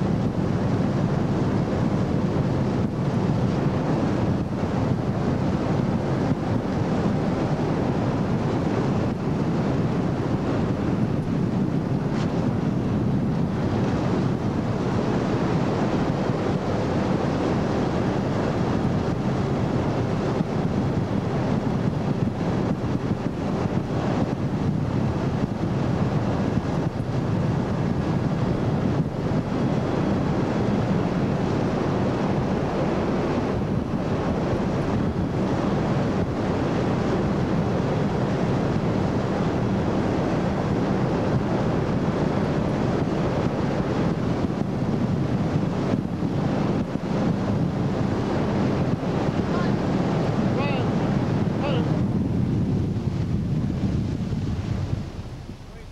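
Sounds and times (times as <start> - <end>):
boat engine running: 0.0 - 55.9
wind buffeting microphone: 0.0 - 55.9
water rushing past: 1.0 - 55.9.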